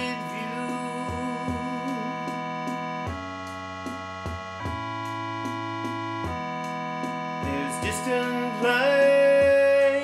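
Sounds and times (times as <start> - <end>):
light ticking beat: 0.0 - 10.0
sustained electronic chords: 0.0 - 10.0.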